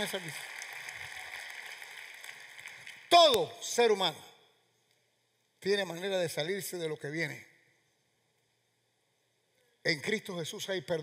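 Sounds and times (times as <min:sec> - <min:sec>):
audience applause: 0:00.0 - 0:03.1.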